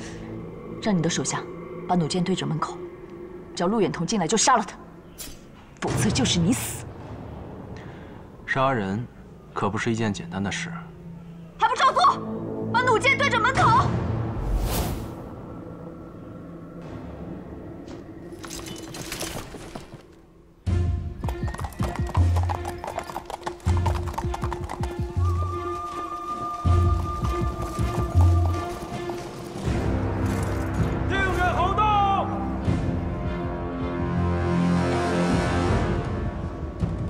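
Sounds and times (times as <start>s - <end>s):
horse hooves clip-clopping: 21.2s - 31.0s.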